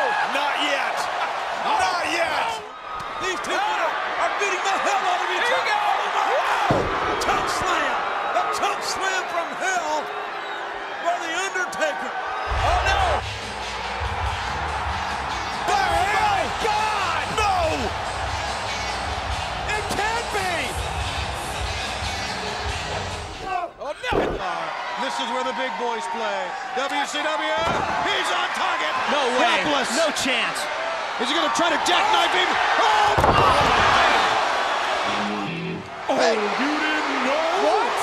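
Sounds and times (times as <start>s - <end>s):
slam impacts: 6.6s - 7.6s, 33.0s - 34.1s.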